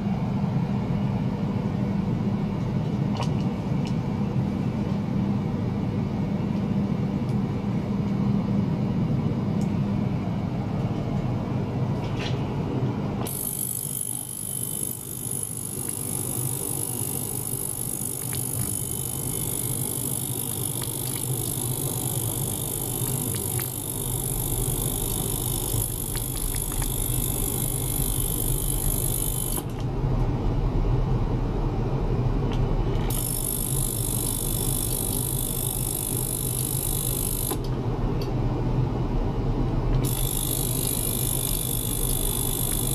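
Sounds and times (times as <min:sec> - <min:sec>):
ultrasonic cleaner hum: 0:00.0 - 0:42.9.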